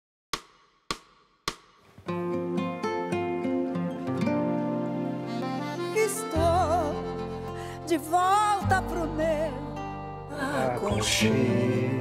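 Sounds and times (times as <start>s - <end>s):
sharp knocks: 0.3s - 1.9s.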